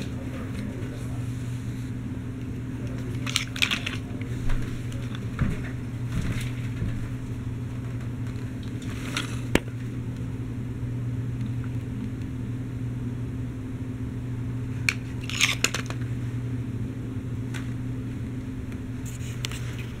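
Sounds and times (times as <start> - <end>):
toy electric motor humming: 14.9 - 16.0.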